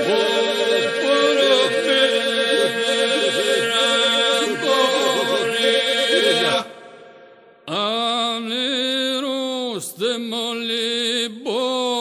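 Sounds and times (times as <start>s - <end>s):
polyphonic folk singing: 0.0s - 7.1s.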